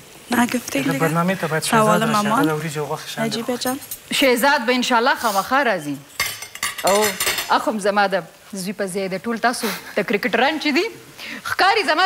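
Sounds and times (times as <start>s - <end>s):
people talking: 0.3s - 6.0s.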